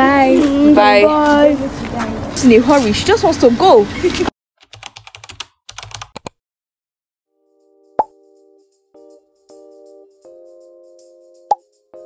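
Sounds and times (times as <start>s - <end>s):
keyboard typing clicks: 4.6s - 6.4s
plucked chord music: 7.4s - 12.0s.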